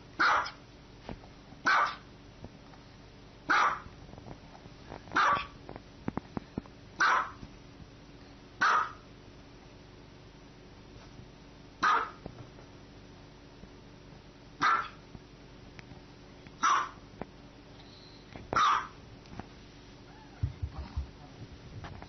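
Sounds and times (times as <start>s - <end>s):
small dog barking: 0.2s - 0.6s, 1.6s - 2.1s, 3.5s - 3.9s, 5.2s - 5.6s, 7.0s - 7.4s, 8.6s - 9.1s, 11.8s - 12.2s, 14.6s - 15.0s, 16.6s - 17.0s, 18.6s - 19.0s.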